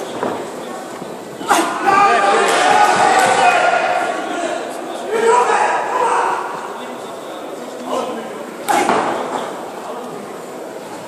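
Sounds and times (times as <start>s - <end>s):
man shouting in echoing hall: 1.4s - 6.7s.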